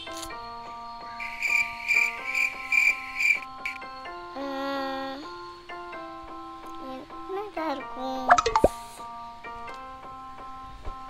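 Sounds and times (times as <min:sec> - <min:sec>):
background music: 0:00.0 - 0:11.0
person speaking: 0:06.9 - 0:08.9
popping sound effect with falling sweep: 0:08.3 - 0:08.8.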